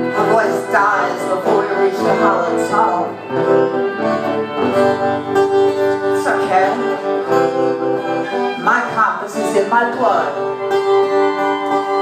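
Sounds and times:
acoustic guitar chords: 0:00.0 - 0:12.0
violin held notes: 0:00.0 - 0:12.0.

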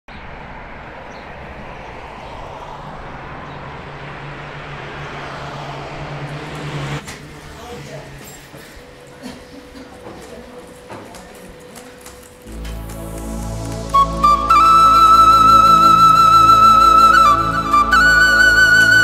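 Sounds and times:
city traffic with low hum: 0:00.1 - 0:19.0.

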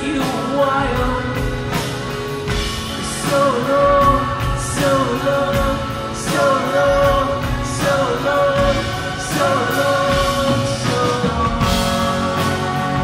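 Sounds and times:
acoustic guitar: 0:00.0 - 0:13.0
drums: 0:00.0 - 0:13.0
electric bass: 0:00.0 - 0:13.0
person singing long held notes: 0:02.9 - 0:13.0.

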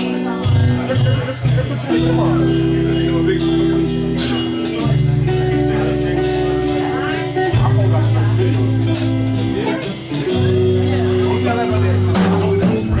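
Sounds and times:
funk band playing: 0:00.0 - 0:13.0
low bass notes: 0:00.0 - 0:13.0.

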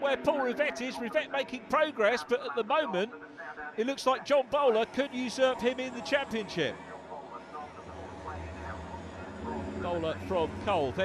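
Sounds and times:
truck diesel engines: 0:04.4 - 0:11.0.

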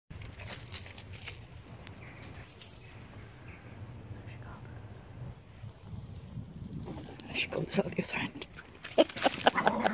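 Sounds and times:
wind rumble on microphone: 0:01.4 - 0:08.8.

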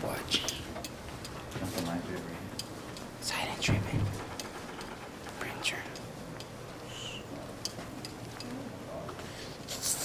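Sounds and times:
whispered voices: 0:00.0 - 0:00.8, 0:03.2 - 0:04.3, 0:05.2 - 0:10.0.

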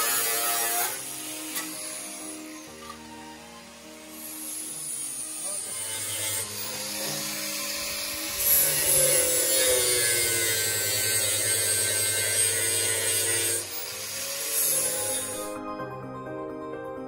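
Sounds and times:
angle grinder cutting metal: 0:00.0 - 0:15.7.

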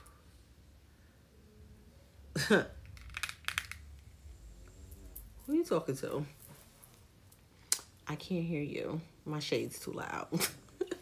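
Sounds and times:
plastic sunglasses clicking: 0:02.8 - 0:03.8.

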